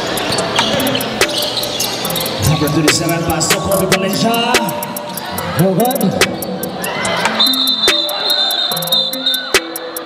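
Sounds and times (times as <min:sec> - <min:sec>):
shoe squeaks: 0:00.0 - 0:03.2, 0:06.0 - 0:09.6
crowd hubbub: 0:00.0 - 0:10.0.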